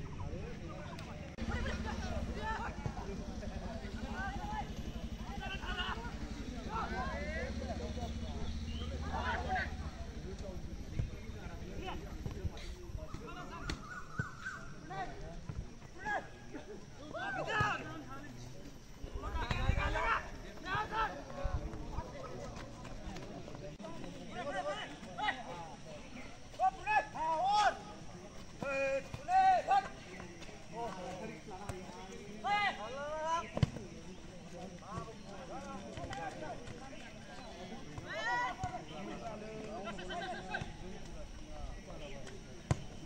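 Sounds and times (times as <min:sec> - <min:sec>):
murmur of spectators' voices: 0:00.0 - 0:43.0
people calling out: 0:00.9 - 0:10.0, 0:15.9 - 0:18.0, 0:24.2 - 0:41.0
football being kicked: 0:33.5 - 0:34.0, 0:42.6 - 0:43.0.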